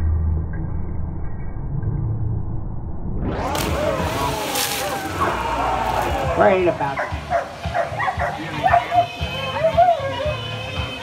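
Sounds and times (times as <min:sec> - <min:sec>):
low rumble: 0:00.0 - 0:04.6
voices: 0:03.4 - 0:11.0.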